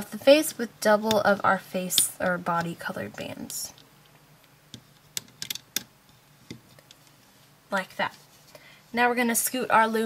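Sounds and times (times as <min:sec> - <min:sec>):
rubber bands clicking on plastic pins: 0:04.7 - 0:07.0.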